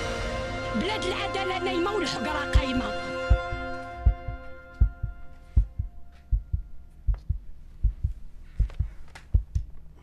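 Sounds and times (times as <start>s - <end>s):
theme music: 0.0s - 6.3s
deep double thumps: 3.2s - 9.7s.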